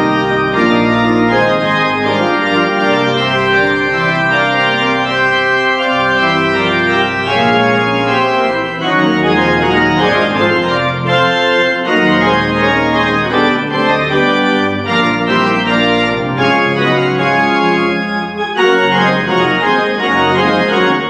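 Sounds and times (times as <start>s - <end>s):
church organ chords: 0.0s - 21.0s
organ pedal bass line: 0.0s - 21.0s.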